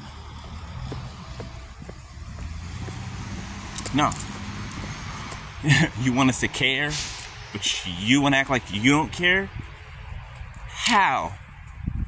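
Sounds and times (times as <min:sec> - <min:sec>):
car driving past: 0:00.0 - 0:08.0.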